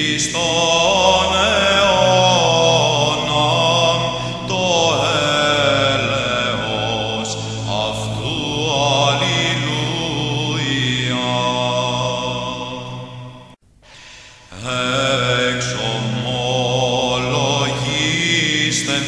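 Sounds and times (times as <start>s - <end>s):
melismatic chant singing: 0.0s - 13.6s, 14.5s - 19.0s
held vocal drone: 0.0s - 19.0s.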